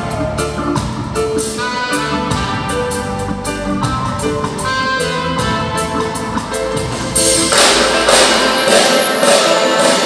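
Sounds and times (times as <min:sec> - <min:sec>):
drums: 0:00.0 - 0:10.0
saxophone melody: 0:00.0 - 0:10.0.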